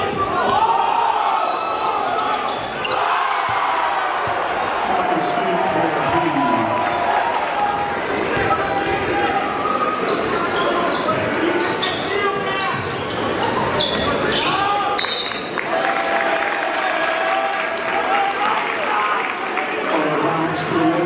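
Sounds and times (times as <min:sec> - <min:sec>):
sneaker squeaks: 0:00.0 - 0:00.8, 0:01.6 - 0:03.6, 0:08.3 - 0:15.6
crowd voices and shouting: 0:00.0 - 0:21.0.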